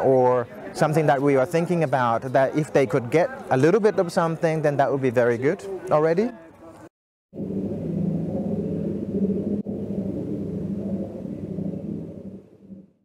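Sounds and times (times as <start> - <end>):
low sine tone drone: 7.3 - 13.0.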